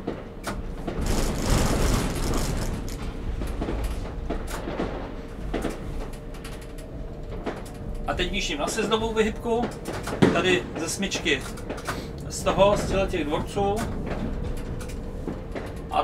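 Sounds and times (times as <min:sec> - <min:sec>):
tram wheels rumbling: 0:00.0 - 0:16.0
wheels knocking over track: 0:00.5 - 0:06.2.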